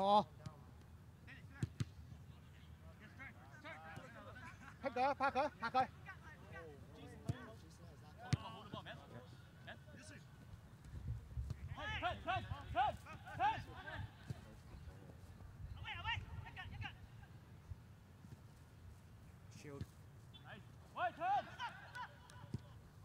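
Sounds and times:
players shouting: 0:11.7 - 0:14.2, 0:20.4 - 0:22.8.

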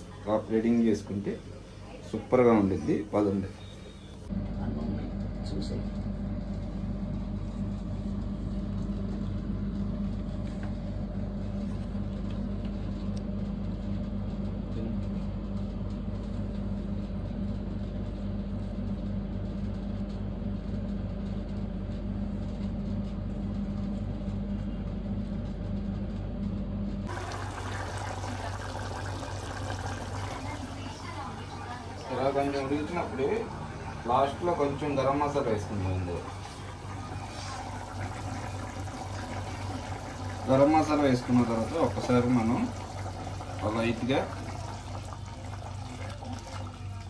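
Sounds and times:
low motor hum: 0:00.0 - 0:47.0.

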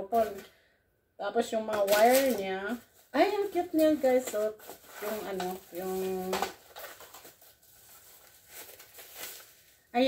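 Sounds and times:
bubble wrap crinkling: 0:01.8 - 0:10.0.

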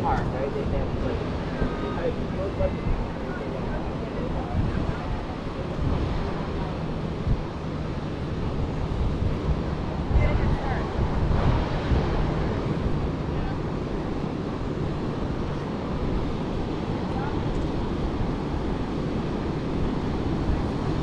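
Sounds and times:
ocean surf breaking: 0:00.0 - 0:21.0
wind buffeting microphone: 0:00.0 - 0:21.0.

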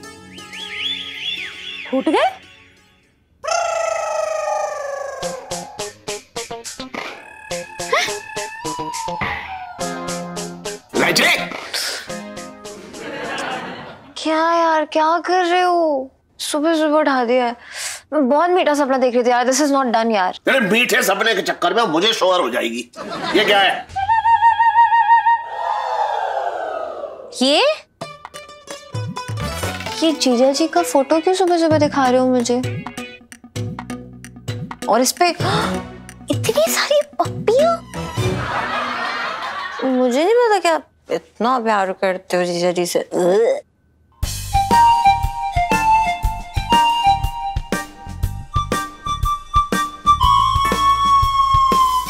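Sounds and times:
fast-warbling tone: 0:07.0 - 0:10.5
long falling pitch glide: 0:07.2 - 0:10.4.

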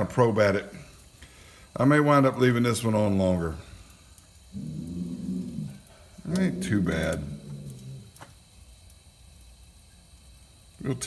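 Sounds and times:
quiet background hum: 0:00.0 - 0:11.0.

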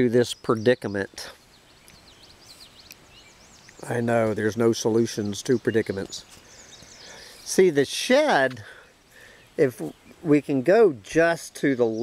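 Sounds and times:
high bird chirps: 0:00.3 - 0:10.3
man's voice: 0:03.8 - 0:06.2, 0:07.5 - 0:08.8, 0:09.6 - 0:12.0.

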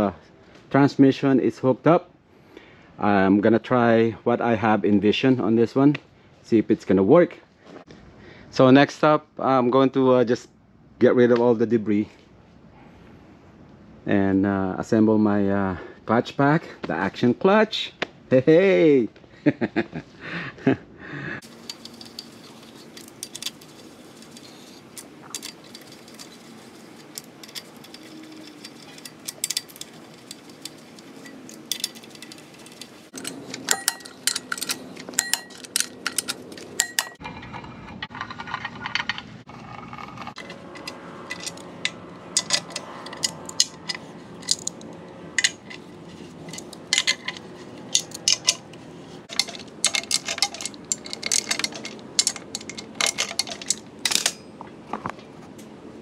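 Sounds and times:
hand tools clinking on metal: 0:21.4 - 0:37.2, 0:40.3 - 0:54.7.

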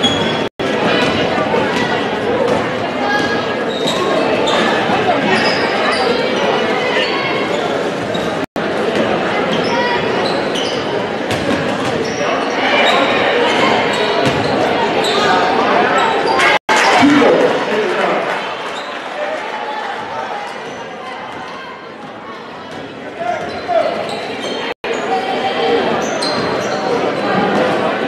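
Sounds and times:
shoes squeaking on court: 0:00.0 - 0:00.5, 0:03.7 - 0:08.4, 0:23.3 - 0:24.7, 0:26.0 - 0:27.0
murmur of crowd voices: 0:00.0 - 0:28.0.

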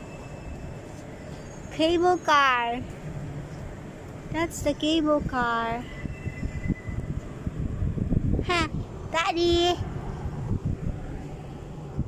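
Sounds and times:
wind rumbling on microphone: 0:02.7 - 0:12.0.

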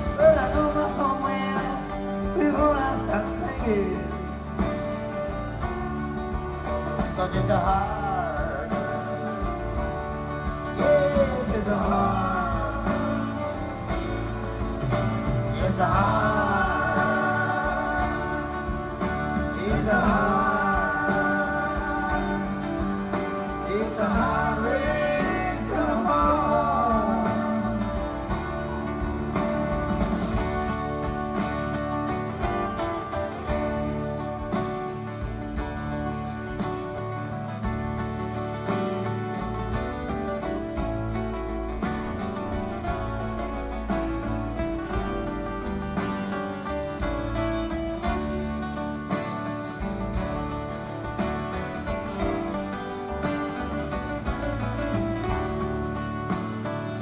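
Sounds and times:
live band playing folk-rock: 0:00.0 - 0:57.0.

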